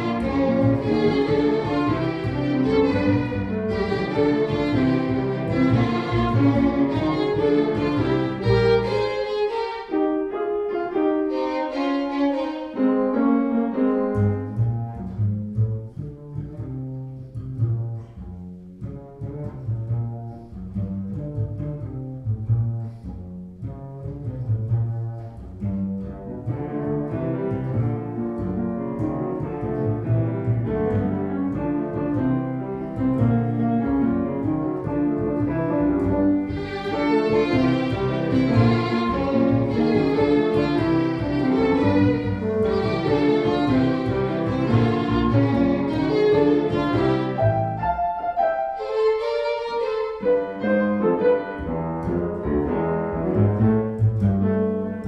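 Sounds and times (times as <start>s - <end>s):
violin piano and bass trio: 0.0s - 55.0s.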